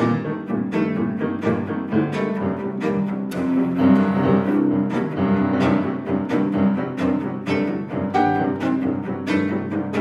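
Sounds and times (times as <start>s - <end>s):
bowed cello notes: 0.0s - 10.0s
piano notes and chords: 0.0s - 10.0s.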